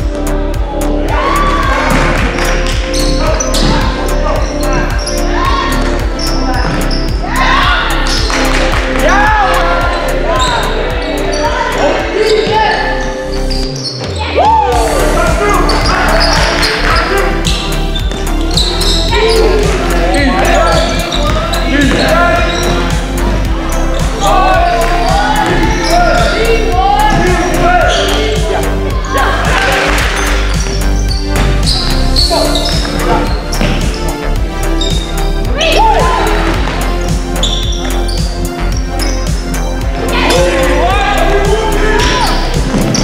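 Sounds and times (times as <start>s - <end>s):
background music: 0.0s - 43.0s
players' voices: 0.3s - 43.0s
shoe squeaks: 2.9s - 5.3s, 6.2s - 7.2s, 12.2s - 14.2s, 15.7s - 22.9s, 30.2s - 34.0s, 34.8s - 35.1s, 37.4s - 39.4s.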